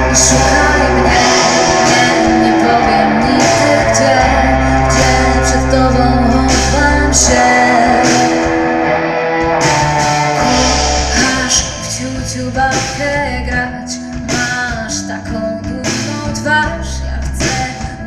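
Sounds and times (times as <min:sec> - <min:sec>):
electric guitar: 0:00.0 - 0:18.0
live rock band playing: 0:00.0 - 0:18.0.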